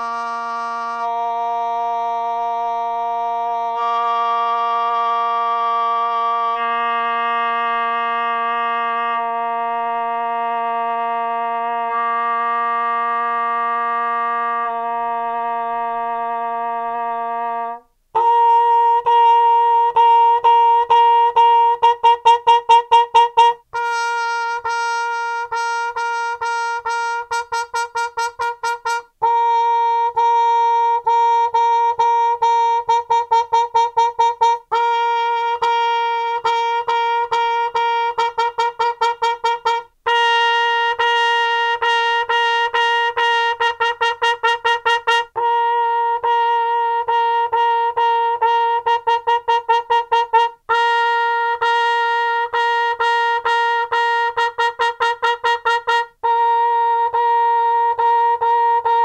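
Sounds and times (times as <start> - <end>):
muted trumpet notes: 0.0 - 59.0.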